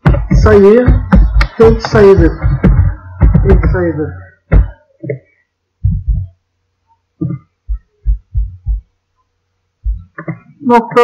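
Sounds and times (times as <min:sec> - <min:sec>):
low dull thumps: 0:00.0 - 0:05.2, 0:05.8 - 0:06.4, 0:07.2 - 0:09.0, 0:09.8 - 0:10.4
faint electrical hum: 0:00.0 - 0:11.0.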